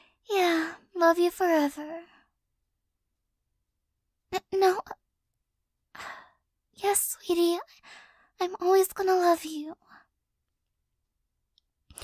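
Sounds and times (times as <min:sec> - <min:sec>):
speech: 0:00.3 - 0:02.1, 0:04.4 - 0:05.0, 0:06.8 - 0:07.7, 0:08.4 - 0:09.8.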